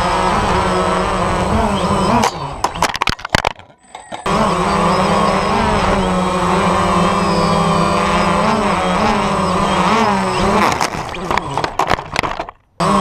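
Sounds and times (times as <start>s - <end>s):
quadcopter propellers buzzing: 0.0s - 3.0s, 4.0s - 13.0s.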